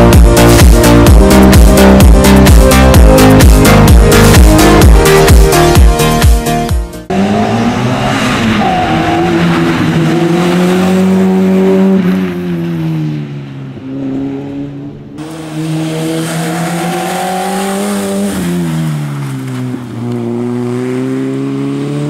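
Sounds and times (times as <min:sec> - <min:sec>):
car engine revving hard: 0:07.1 - 0:12.2, 0:15.2 - 0:19.0, 0:19.9 - 0:22.0.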